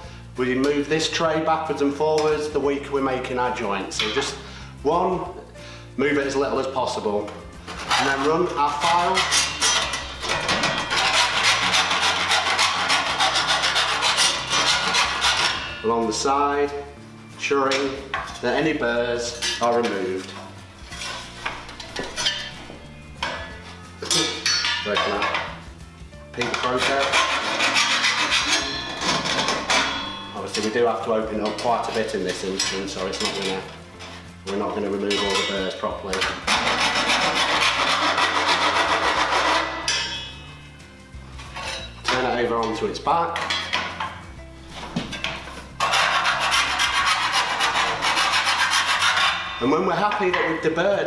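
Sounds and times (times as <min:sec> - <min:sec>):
file rasping on steel: 0:07.6 - 0:15.8, 0:26.4 - 0:30.2, 0:36.2 - 0:40.2, 0:45.7 - 0:49.6.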